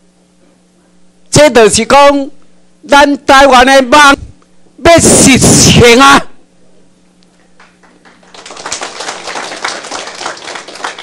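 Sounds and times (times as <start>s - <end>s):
audience applauding: 7.5s - 11.0s.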